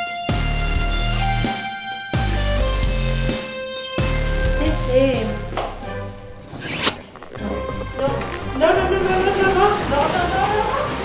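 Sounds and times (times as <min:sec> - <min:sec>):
background music: 0:00.0 - 0:11.0
rising zip-like swish: 0:06.3 - 0:07.4.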